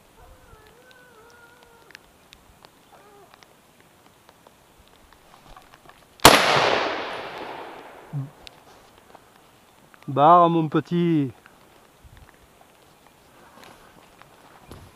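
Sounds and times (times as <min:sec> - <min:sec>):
rifle shot with echo: 0:06.2 - 0:08.4.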